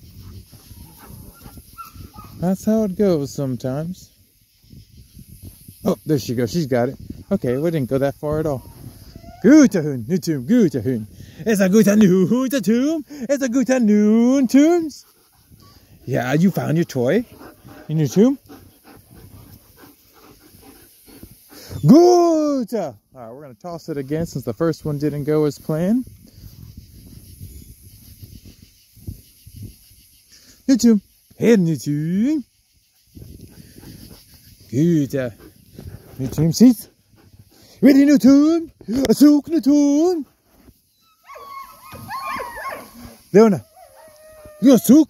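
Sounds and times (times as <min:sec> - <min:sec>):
dog panting: 0:00.2 - 0:02.3, 0:14.0 - 0:21.8, 0:33.2 - 0:39.0
dog whining: 0:08.6 - 0:09.5.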